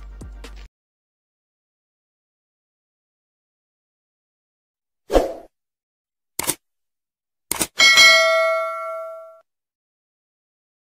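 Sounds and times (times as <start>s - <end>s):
sharp clicks: 6.4s - 6.6s, 7.5s - 7.8s
bell ding: 7.8s - 9.4s.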